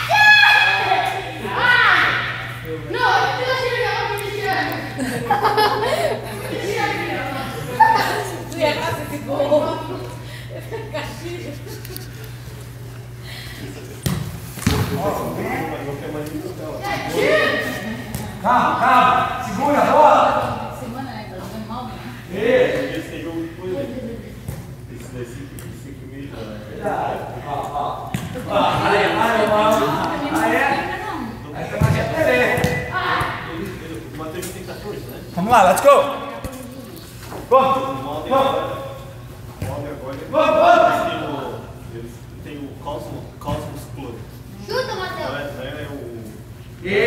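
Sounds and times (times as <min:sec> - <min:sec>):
soccer ball kicks on turf: 0:14.0 - 0:15.0
soccer ball thuds: 0:14.0 - 0:15.0, 0:31.8 - 0:33.3.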